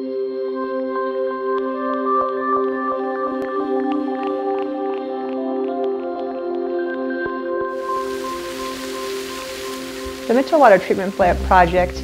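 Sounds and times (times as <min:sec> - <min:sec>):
ambient background music: 0:00.0 - 0:12.0
water spraying hiss: 0:07.7 - 0:12.0.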